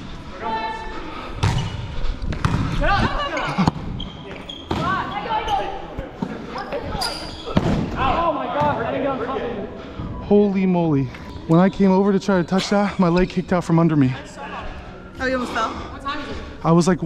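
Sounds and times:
ball striking hardwood court: 0:01.4 - 0:02.8.

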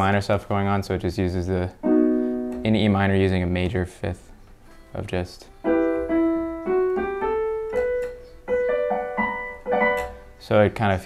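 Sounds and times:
electronic keyboard piano notes: 0:01.8 - 0:03.5, 0:05.6 - 0:10.3.

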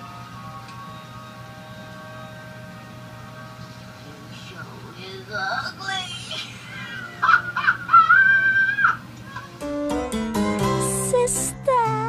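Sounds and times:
woman's high-pitched laughing cries: 0:06.3 - 0:09.6.

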